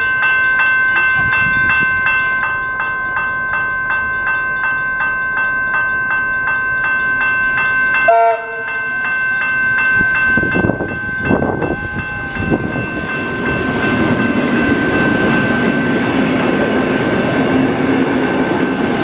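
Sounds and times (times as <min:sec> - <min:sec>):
electric train passing: 0:00.0 - 0:19.0
high pulsing ringing: 0:00.0 - 0:19.0
train wheels on track: 0:00.0 - 0:19.0
train horn toot: 0:08.1 - 0:08.7.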